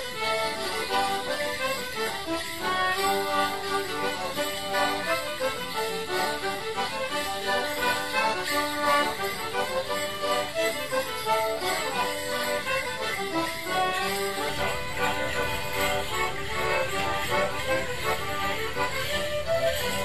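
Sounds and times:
fiddle: 0:00.0 - 0:20.0
folk dance tune on melodeon: 0:00.0 - 0:20.0
leg bells jingling: 0:00.0 - 0:20.0.

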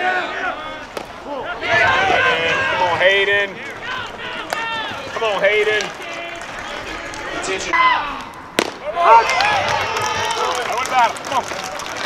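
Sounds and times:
voices shouting: 0:00.0 - 0:12.0
sharp crack: 0:08.2 - 0:09.6.

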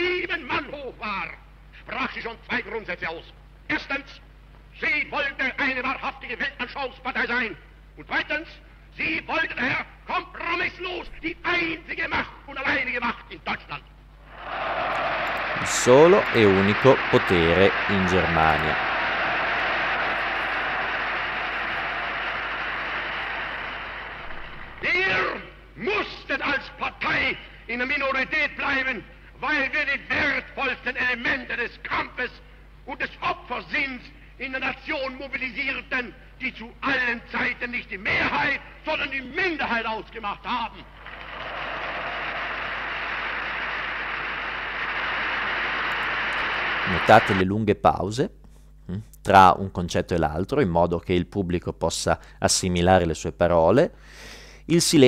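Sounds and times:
crowd applause: 0:14.3 - 0:24.9, 0:41.0 - 0:47.4
man speaking: 0:15.6 - 0:18.8, 0:46.9 - 0:48.3, 0:48.9 - 0:53.9, 0:54.7 - 0:55.0.

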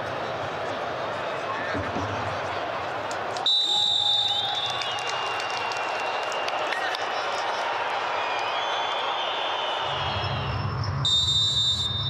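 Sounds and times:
referee's whistle blast: 0:03.5 - 0:05.0, 0:09.1 - 0:12.0.

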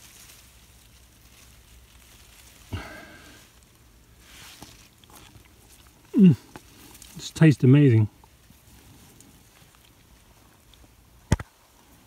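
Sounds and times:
rustling of grass and leaves: 0:00.0 - 0:12.0.

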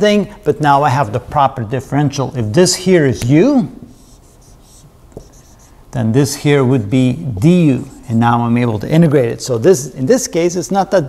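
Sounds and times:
marker scratching on whiteboard: 0:03.9 - 0:05.8, 0:07.2 - 0:08.2.

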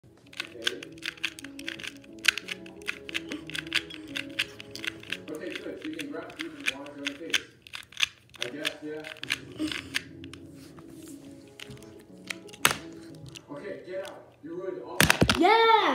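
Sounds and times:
background music: 0:00.0 - 0:15.9
plastic cube clicking: 0:00.2 - 0:10.4, 0:11.5 - 0:14.2, 0:15.0 - 0:15.4
person speaking: 0:00.2 - 0:15.9.

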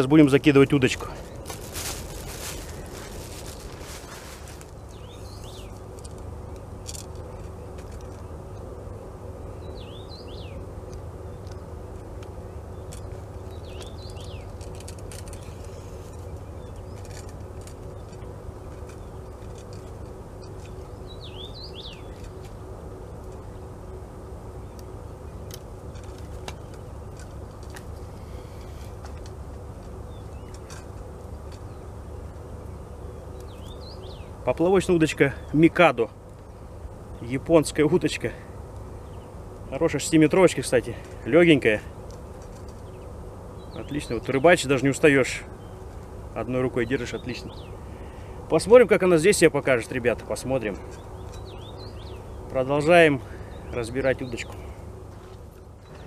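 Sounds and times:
low background noise: 0:00.0 - 0:56.0
small birds chirping: 0:00.0 - 0:56.0
brief rustle: 0:01.4 - 0:04.8.

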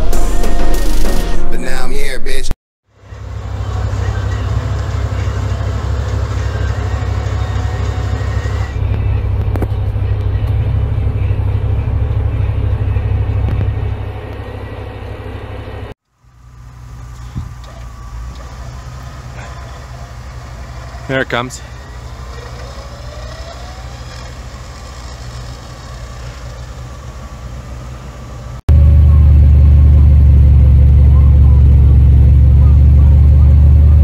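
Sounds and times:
quieter engine running: 0:02.9 - 0:34.0
truck engines rumbling under load: 0:03.0 - 0:34.0.

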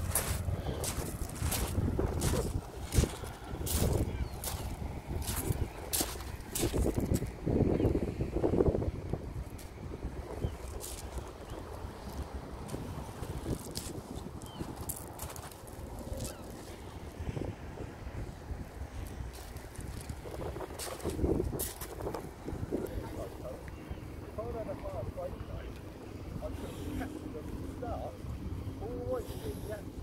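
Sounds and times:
footsteps crunching on shingle: 0:00.0 - 0:07.3, 0:10.7 - 0:16.9, 0:19.0 - 0:22.9
wind buffeting microphone: 0:00.0 - 0:30.0.

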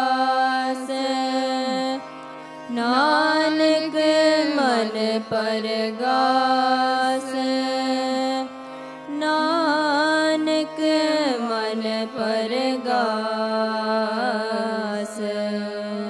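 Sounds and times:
harmonium: 0:00.0 - 0:16.0
person singing devotional song: 0:00.0 - 0:16.0.

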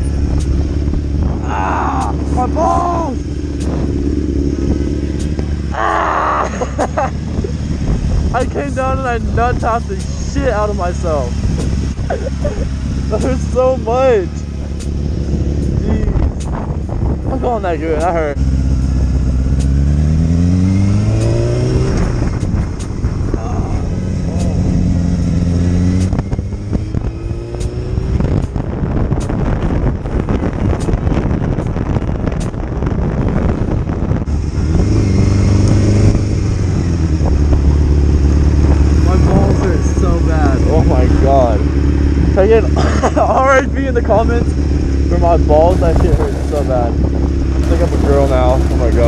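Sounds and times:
motorcycle engine revving: 0:00.0 - 0:49.0
wind rushing on microphone: 0:00.0 - 0:49.0
motorcycle engine idling: 0:37.4 - 0:49.0.

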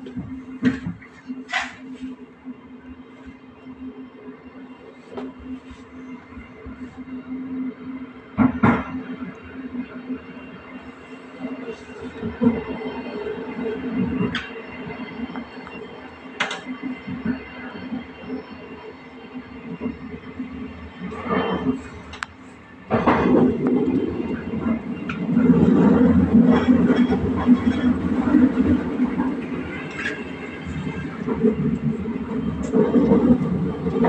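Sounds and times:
train running gear hum: 0:00.0 - 0:34.0.

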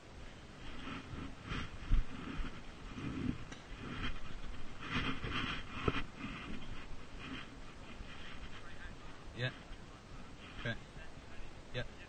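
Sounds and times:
hard breathing: 0:00.6 - 0:11.4.

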